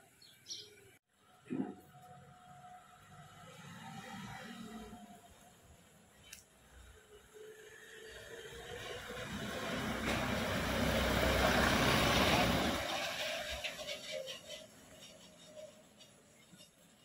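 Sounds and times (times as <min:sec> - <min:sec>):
vehicle driving past: 0:01.9 - 0:05.7, 0:06.8 - 0:15.0.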